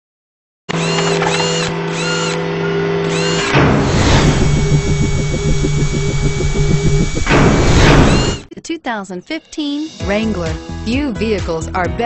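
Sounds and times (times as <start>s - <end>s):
electronic hum: 0.8s - 8.5s
fast pulsing buzz: 3.1s - 8.5s
swooping electronic chirp: 3.2s - 8.5s.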